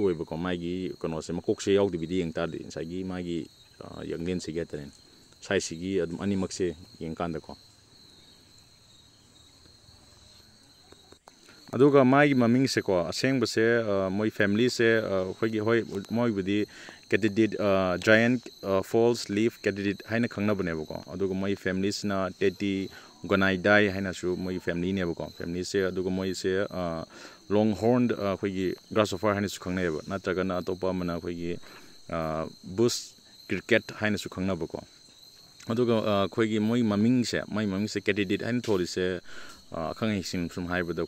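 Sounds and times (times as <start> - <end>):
man speaking: 0.0 - 7.6, 11.7 - 34.9, 35.6 - 41.0
high-pitched insect trill: 0.0 - 41.0.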